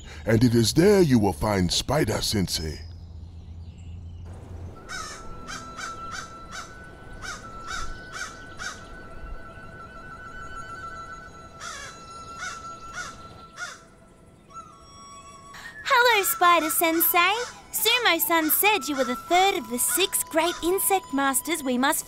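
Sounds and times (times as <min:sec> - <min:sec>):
crow cawing: 0:04.8 - 0:09.0, 0:11.6 - 0:13.9, 0:16.4 - 0:21.1.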